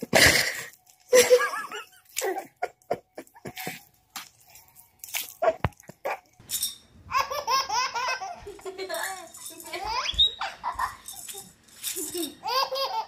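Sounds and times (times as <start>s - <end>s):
baby giggling: 7.1s - 13.0s.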